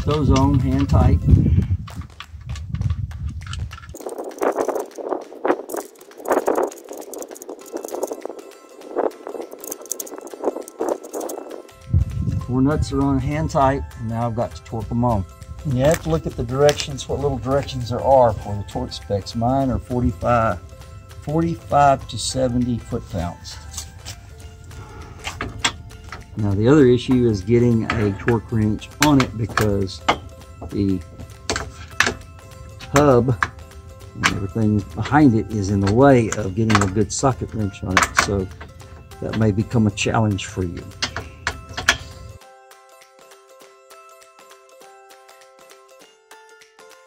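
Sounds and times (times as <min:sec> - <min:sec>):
soft background music: 0:00.0 - 0:02.2, 0:03.4 - 0:47.0
metallic clicking and rattling: 0:00.0 - 0:11.7, 0:15.6 - 0:42.4.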